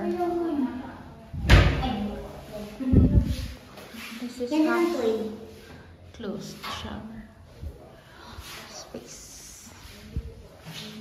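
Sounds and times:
door slamming: 0:01.4 - 0:01.9
thud: 0:01.4 - 0:02.0.

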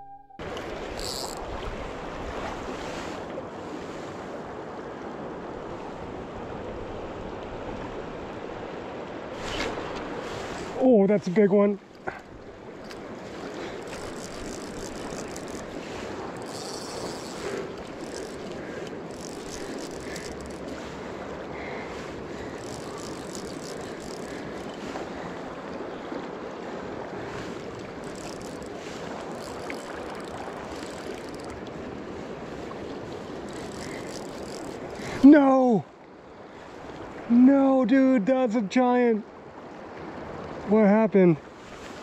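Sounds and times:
shallow river rushing: 0:00.4 - 0:37.5.

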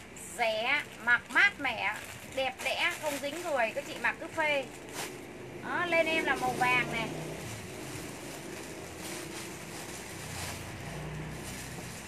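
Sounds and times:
rustling of plastic-wrapped clothing: 0:00.4 - 0:12.0.

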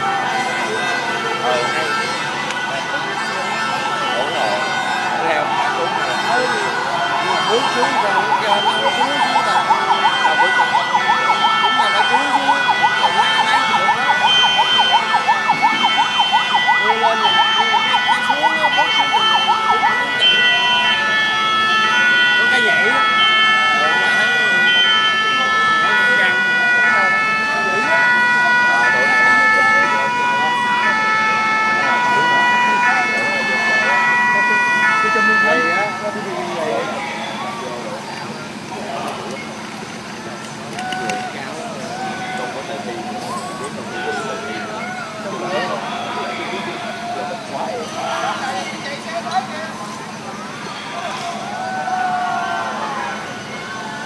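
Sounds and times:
emergency vehicle sirens: 0:00.0 - 0:54.0.

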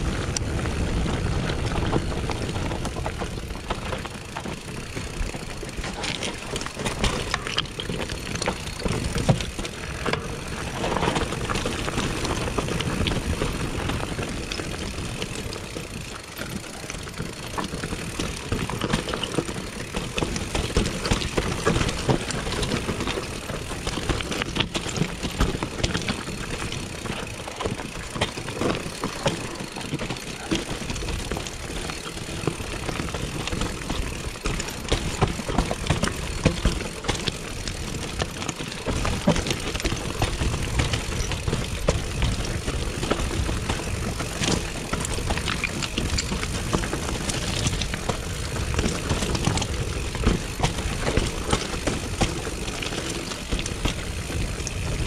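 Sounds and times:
bike rattling: 0:00.0 - 0:55.0
tyres crunching on dirt: 0:00.0 - 0:55.0.

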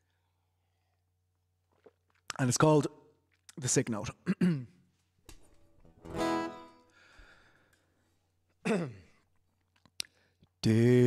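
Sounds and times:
acoustic guitar chord strummed: 0:05.9 - 0:06.8.

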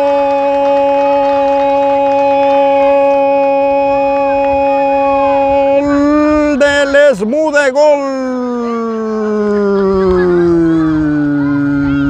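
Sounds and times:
man shouting long goal call: 0:00.0 - 0:09.4.

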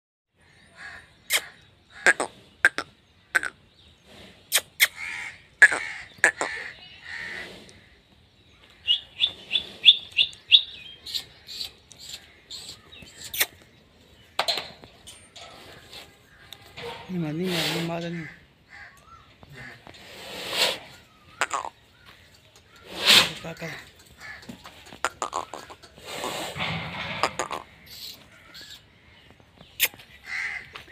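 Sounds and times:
birds calling and chirping: 0:00.3 - 0:30.9.

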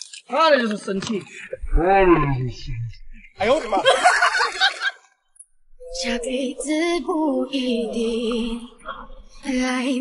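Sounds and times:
hearty human laughter: 0:03.4 - 0:05.0.

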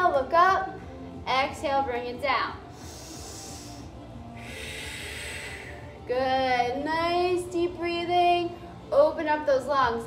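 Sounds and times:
faint background music: 0:00.0 - 0:10.0
woman breathing deeply: 0:02.6 - 0:06.0.

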